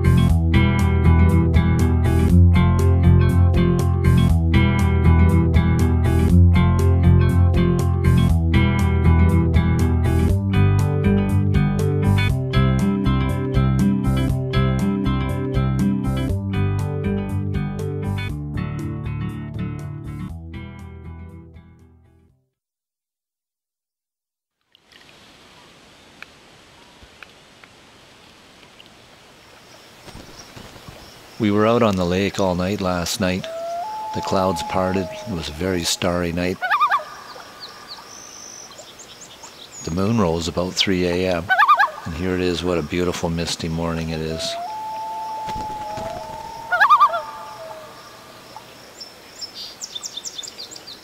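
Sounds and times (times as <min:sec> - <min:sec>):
soft steady hiss: 0:24.6 - 0:51.0
loon wailing and quavering: 0:33.2 - 0:38.8, 0:41.3 - 0:42.9, 0:43.7 - 0:48.8.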